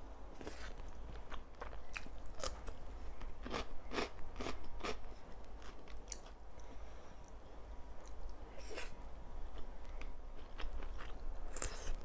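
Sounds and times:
crunchy chewing of salad: 0.4s - 6.4s, 8.0s - 12.0s.

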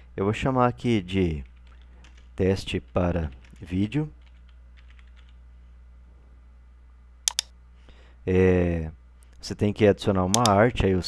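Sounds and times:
keyboard typing: 1.5s - 5.4s, 7.3s - 7.5s
sharp double click: 7.3s - 7.5s.

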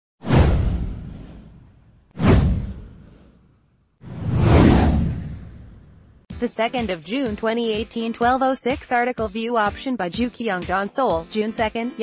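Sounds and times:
whoosh with deep boom: 0.2s - 6.3s.

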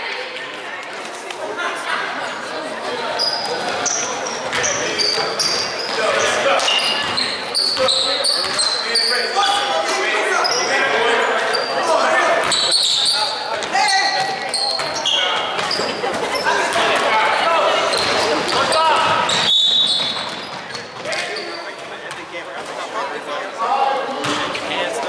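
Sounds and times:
sneakers squeaking on court: 3.1s - 9.4s, 10.4s - 17.0s, 17.8s - 22.3s
basketball bouncing: 8.4s - 8.7s.

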